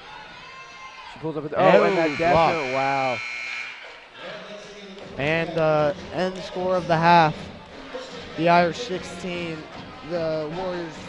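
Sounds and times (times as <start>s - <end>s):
gymnasium crowd noise: 0.0s - 11.0s
man exclaiming: 1.6s - 3.1s.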